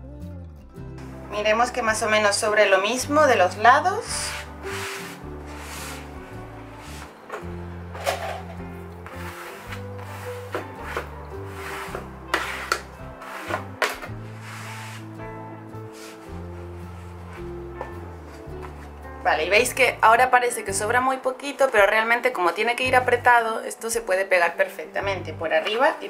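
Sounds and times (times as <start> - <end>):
background music with bass notes: 0.0 - 22.1, 22.8 - 24.2, 25.0 - 26.0.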